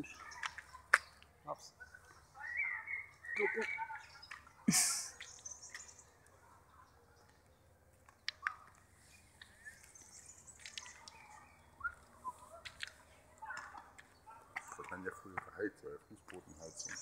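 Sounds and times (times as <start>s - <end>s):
distant bird chirps: 0.0s - 17.0s.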